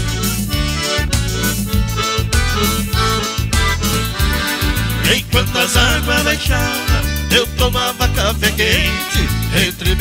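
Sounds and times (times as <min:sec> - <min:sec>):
accordion melody: 0:00.0 - 0:10.0
bass line: 0:00.0 - 0:10.0.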